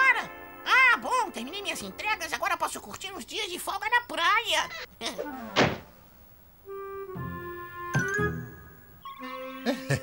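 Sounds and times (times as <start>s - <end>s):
heavy thud: 5.6s - 5.9s.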